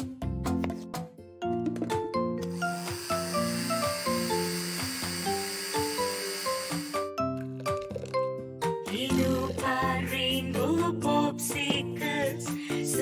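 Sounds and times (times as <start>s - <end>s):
children's background music: 0.0s - 3.2s, 5.8s - 13.0s
cartoon blender hiss: 2.4s - 7.2s.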